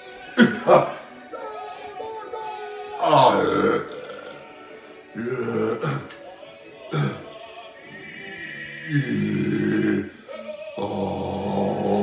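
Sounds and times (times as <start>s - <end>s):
background music: 0.0s - 12.0s
person making throaty vocal noises: 2.3s - 6.2s, 6.9s - 7.3s, 7.9s - 10.2s, 10.8s - 12.0s.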